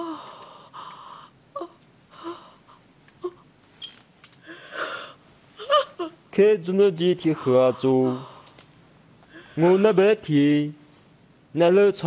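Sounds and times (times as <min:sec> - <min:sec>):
woman gasping and sobbing: 0:00.0 - 0:03.5, 0:04.4 - 0:06.3, 0:07.4 - 0:08.6, 0:09.2 - 0:10.0.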